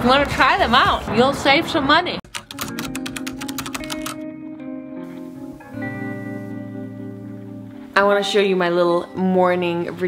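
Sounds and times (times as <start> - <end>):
soft background music: 0.0 - 10.0
keyboard typing clicks: 2.3 - 4.2.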